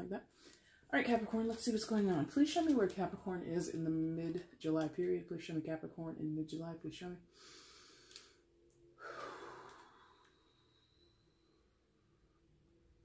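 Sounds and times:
person exhaling softly: 9.0s - 11.3s.

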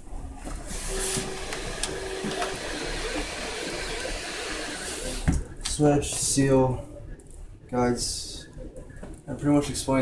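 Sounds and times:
fans hissing: 0.2s - 10.0s
stepper motors whining: 0.6s - 5.5s.

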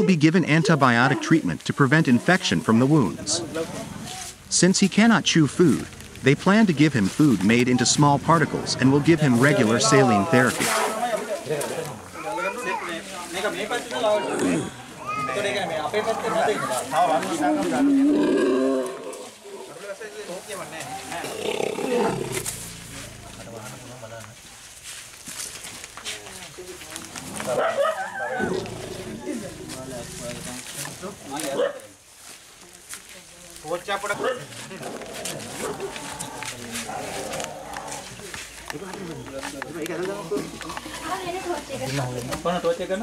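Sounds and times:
men's voices: 0.0s - 24.4s, 27.2s - 31.8s, 33.6s - 41.0s
elephant calf bellowing: 21.0s - 23.6s.

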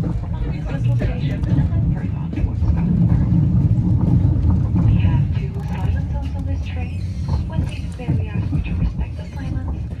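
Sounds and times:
faint voices: 0.0s - 10.0s
train rumbling: 0.0s - 10.0s.

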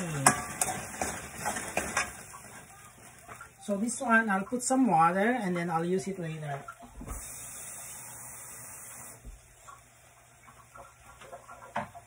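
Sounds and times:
food sizzling in pan: 0.0s - 12.0s.

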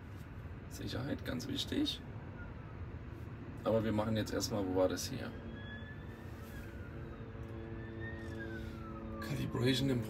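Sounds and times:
road rumble in car: 0.0s - 10.0s
faint siren wailing: 0.5s - 10.0s.

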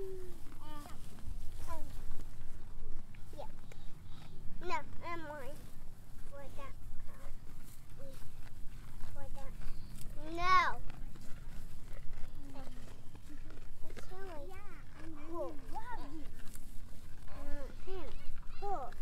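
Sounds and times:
young children babbling and squealing: 0.0s - 2.0s.

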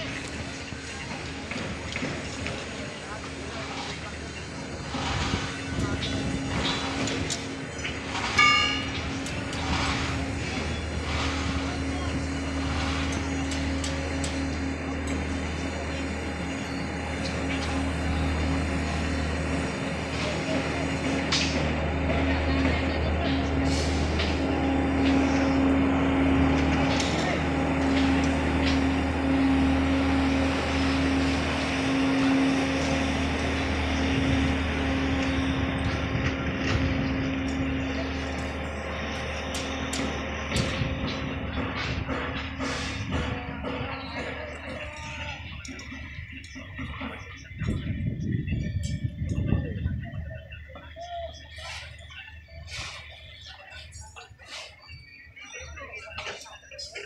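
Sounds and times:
construction machinery engine drone: 0.0s - 57.0s
faint distant voices: 0.0s - 57.0s.

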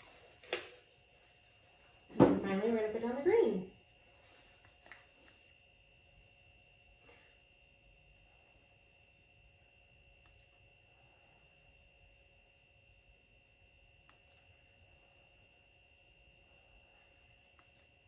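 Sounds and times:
steady high-pitched whine: 0.0s - 18.0s.

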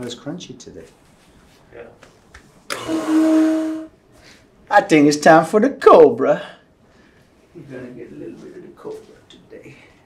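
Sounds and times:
electric motor humming: 2.7s - 3.8s.

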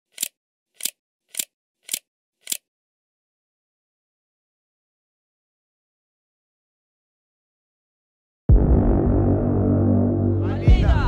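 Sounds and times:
short sharp clicks: 0.1s - 2.7s.

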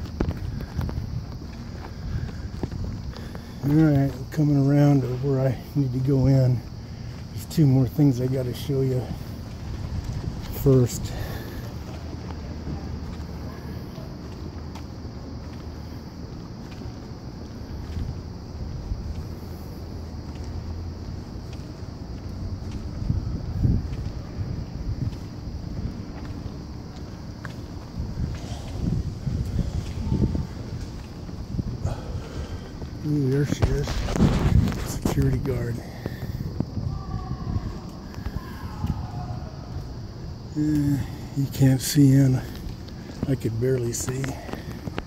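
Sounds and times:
city ambience: 0.0s - 45.0s
low outdoor rumble: 0.0s - 45.0s
wind buffeting the microphone: 0.0s - 45.0s.

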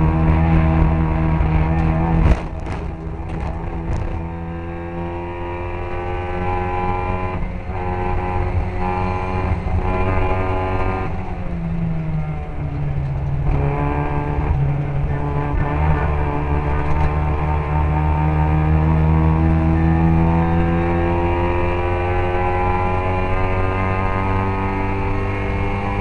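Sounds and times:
racing car engine changing gear: 0.0s - 26.0s.

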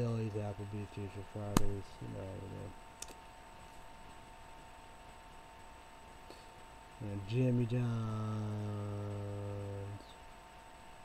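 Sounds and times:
faint high-pitched electrical whine: 0.0s - 11.0s.

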